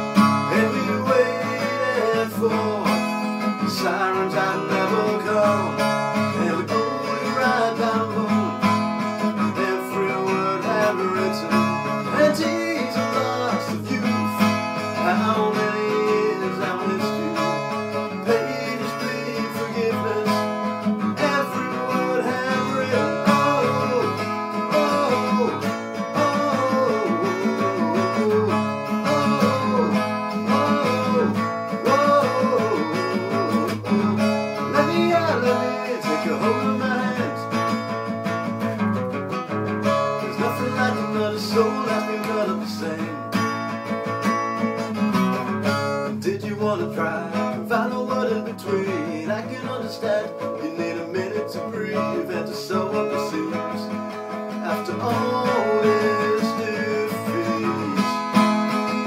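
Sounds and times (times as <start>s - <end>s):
person singing: 0.0s - 38.0s, 39.8s - 59.0s
acoustic guitar strumming: 0.0s - 59.0s.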